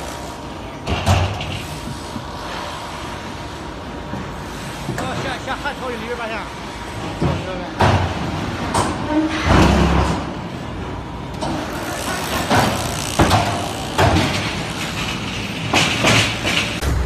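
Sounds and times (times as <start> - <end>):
machinery mechanical din: 11.3 - 17.0
metallic clanks and knocks: 11.4 - 17.0.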